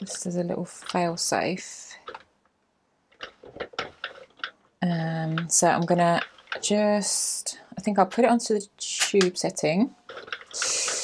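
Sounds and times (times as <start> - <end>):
knitting machine ticking: 3.1 - 8.6.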